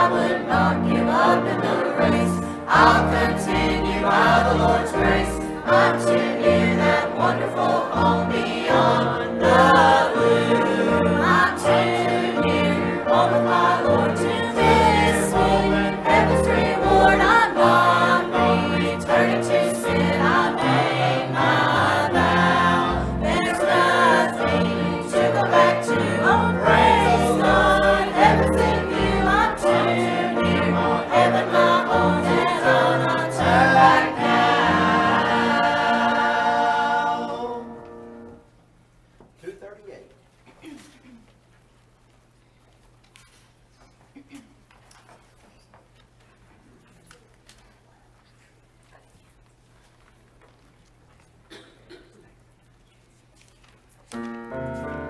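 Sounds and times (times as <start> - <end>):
choir singing a hymn: 0.0 - 38.4
piano accompaniment: 0.0 - 38.5, 54.1 - 55.0.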